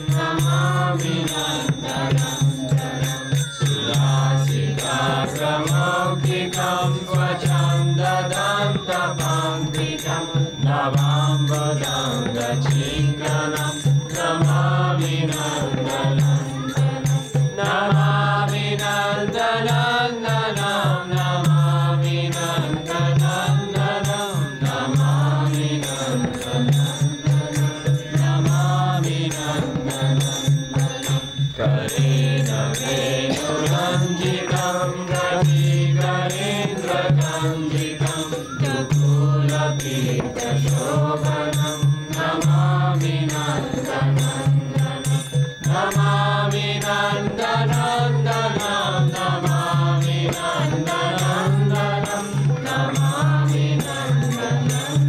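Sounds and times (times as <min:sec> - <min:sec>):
group chanting a mantra: 0:00.0 - 0:55.0.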